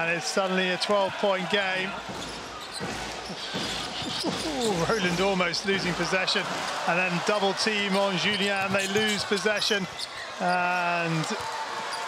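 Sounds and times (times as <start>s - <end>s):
basketball bouncing on court: 2.0s - 6.9s.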